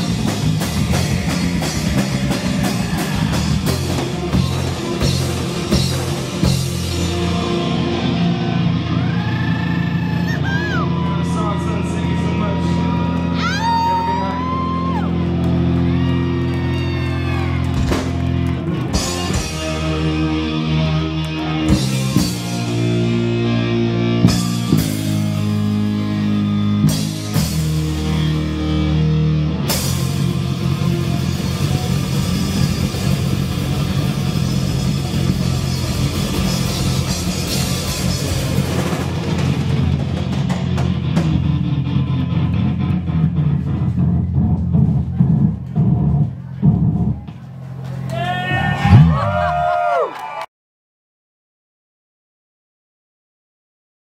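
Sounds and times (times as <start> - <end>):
electric guitars ringing: 15.1 - 44.2.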